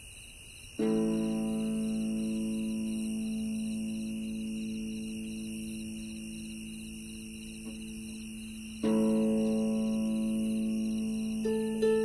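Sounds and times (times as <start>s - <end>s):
faint high chirping: 0.0s - 12.0s.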